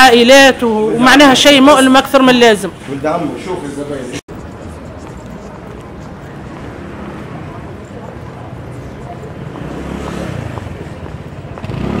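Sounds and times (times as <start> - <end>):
city noise: 0.0 - 12.0
hubbub of passers-by voices: 0.0 - 12.0.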